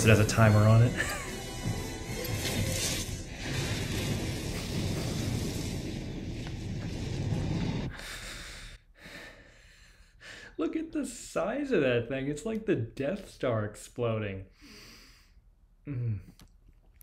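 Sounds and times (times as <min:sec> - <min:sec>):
film music: 0:00.0 - 0:04.1
crackling flare: 0:00.0 - 0:08.0
explosion rumble: 0:02.4 - 0:08.0.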